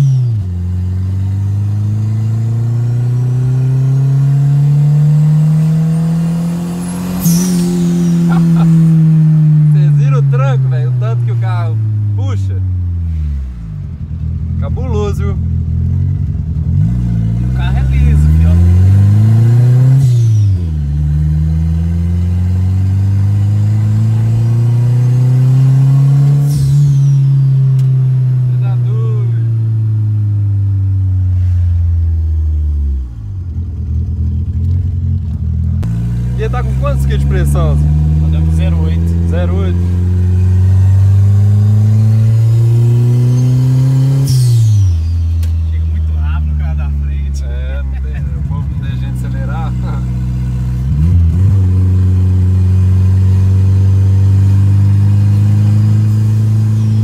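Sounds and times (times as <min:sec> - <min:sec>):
car engine accelerating: 0:00.0 - 0:57.0
turbo falling whistle: 0:06.8 - 0:08.6.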